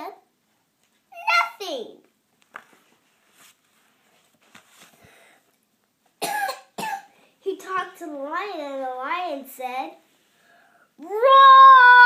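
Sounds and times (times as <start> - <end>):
child coughing: 6.2 - 7.2.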